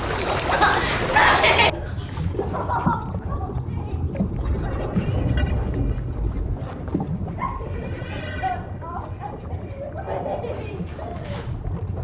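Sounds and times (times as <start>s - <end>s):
muffled underwater rumble: 1.0s - 12.0s.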